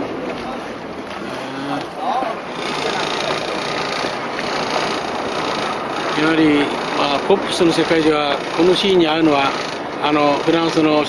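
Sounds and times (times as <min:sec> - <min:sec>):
motorboat engine: 0:00.0 - 0:11.0.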